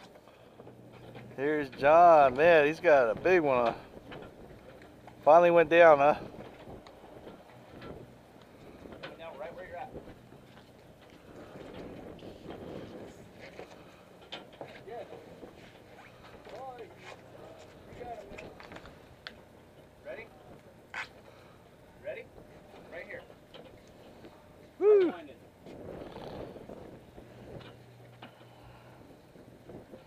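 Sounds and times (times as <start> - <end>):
boat engine hum: 0.0 - 30.0
wind: 0.0 - 30.0.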